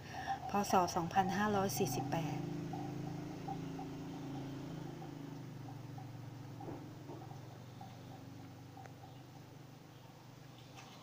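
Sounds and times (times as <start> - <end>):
low steady multi-pitch hum: 0.0 - 11.0.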